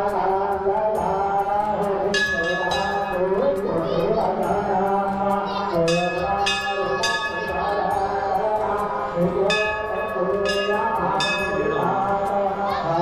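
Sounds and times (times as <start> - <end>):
voices: 0.0 - 13.0
brass bell ringing: 2.1 - 3.7, 5.8 - 13.0.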